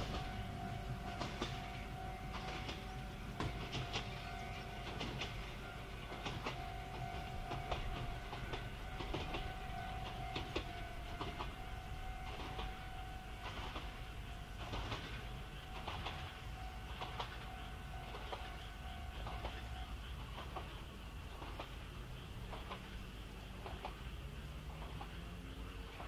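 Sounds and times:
electric train humming: 0:00.0 - 0:26.0
train wheel clicks over rail joints: 0:00.0 - 0:26.0.

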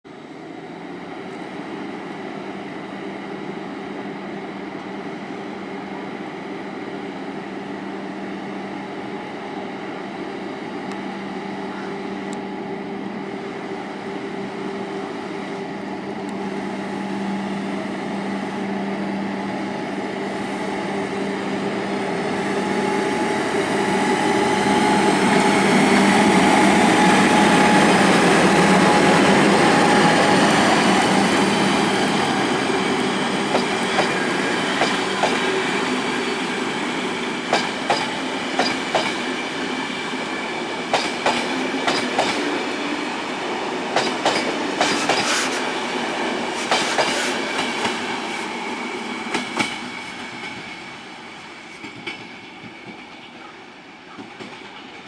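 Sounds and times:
electric locomotive hum and whine: 0:00.1 - 0:55.0
train wheels clicking over rail joints: 0:33.4 - 0:35.6, 0:37.5 - 0:39.3, 0:40.9 - 0:42.5, 0:43.9 - 0:45.6, 0:46.6 - 0:48.0, 0:49.2 - 0:50.8.

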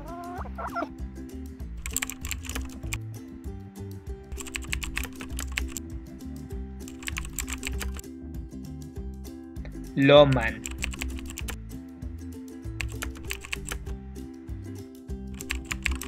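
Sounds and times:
chicken clucking: 0:00.0 - 0:00.9
background music: 0:00.0 - 0:16.0
keyboard typing: 0:01.8 - 0:03.0, 0:04.3 - 0:05.8, 0:06.8 - 0:08.0, 0:10.3 - 0:11.6, 0:12.8 - 0:13.9, 0:15.4 - 0:16.0.

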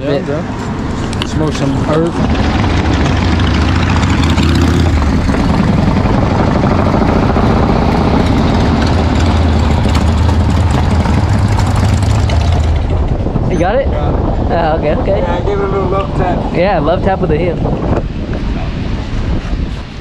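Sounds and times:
motorcycle engines running: 0:00.0 - 0:20.0.

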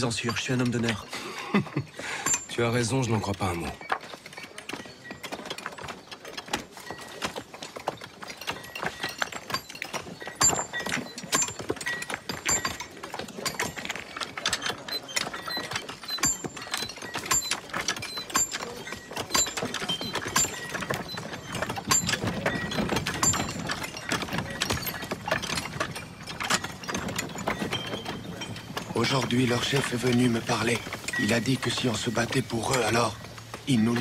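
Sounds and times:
overlapping knocks and clicks: 0:00.0 - 0:34.0.

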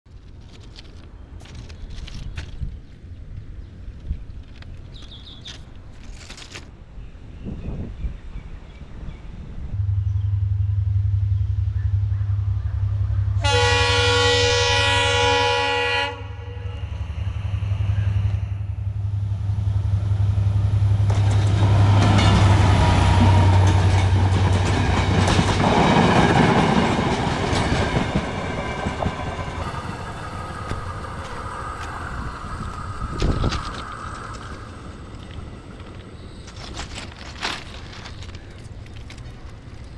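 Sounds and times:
low train drone: 0:00.1 - 0:39.9
train horn: 0:13.2 - 0:17.1
train wheels clattering on rails: 0:20.8 - 0:39.9.

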